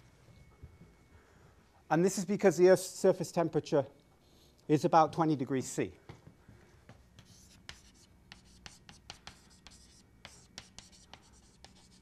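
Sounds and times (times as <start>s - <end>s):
chalk writing on a blackboard: 6.8s - 12.0s.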